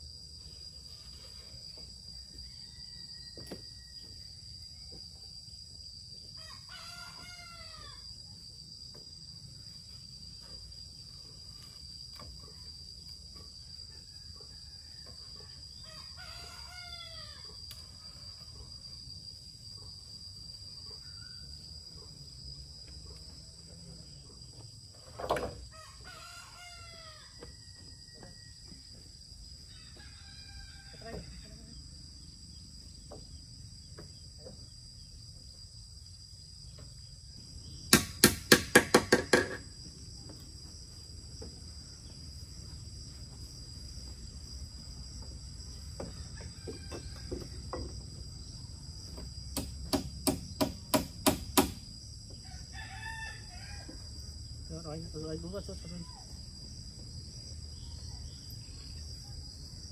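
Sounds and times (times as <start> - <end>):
high drone of insects: 0.0 - 59.9
rooster crowing: 2.1 - 4.4, 6.3 - 8.1, 13.8 - 17.6, 25.7 - 28.7, 29.7 - 31.8, 46.0 - 47.9, 52.4 - 54.4
hammer driving nails into wood: 37.9 - 39.6.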